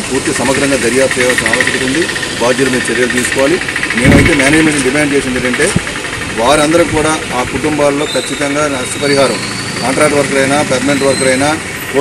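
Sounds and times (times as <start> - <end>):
engine humming: 0.0 - 12.0
man talking: 0.0 - 12.0.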